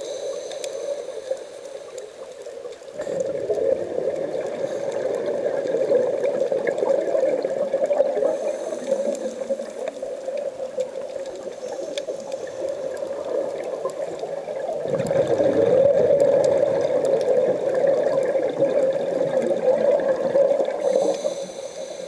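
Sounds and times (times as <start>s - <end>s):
muffled underwater churning: 0.0s - 22.0s.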